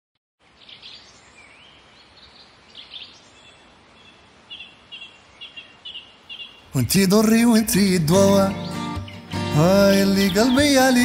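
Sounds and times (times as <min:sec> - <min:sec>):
birds chirping: 0:00.4 - 0:11.0
faint outdoor hiss: 0:00.4 - 0:11.0.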